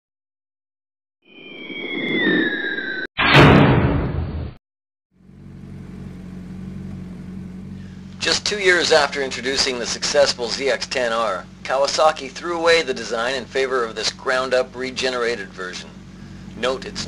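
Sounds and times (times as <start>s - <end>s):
whoosh with sliding tones: 1.3s - 4.5s
short loud burst: 3.2s - 4.6s
motorcycle engine idling: 5.2s - 17.0s.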